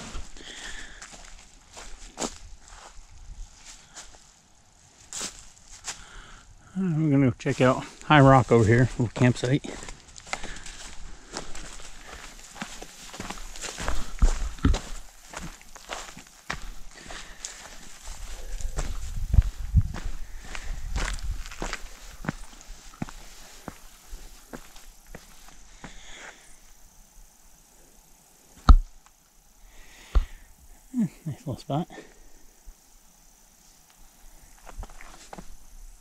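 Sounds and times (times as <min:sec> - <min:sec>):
footsteps on leaves and rock: 0:00.0 - 0:06.3, 0:07.4 - 0:26.8, 0:33.9 - 0:35.7.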